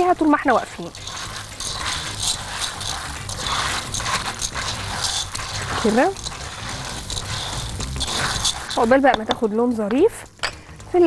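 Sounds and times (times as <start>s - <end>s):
pasta rattling in a pot: 0.0s - 11.0s.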